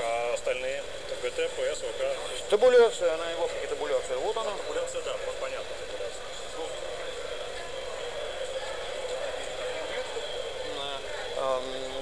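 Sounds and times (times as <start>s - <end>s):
background whir and hiss: 0.0s - 12.0s.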